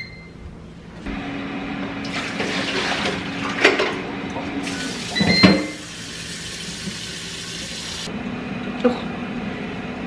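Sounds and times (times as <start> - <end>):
tap water running: 2.0 - 8.1.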